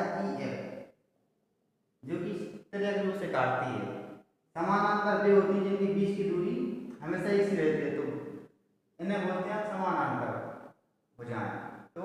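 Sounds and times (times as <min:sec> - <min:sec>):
man speaking: 0:00.0 - 0:00.6, 0:02.0 - 0:03.9, 0:04.6 - 0:08.1, 0:09.0 - 0:10.4, 0:11.2 - 0:11.5.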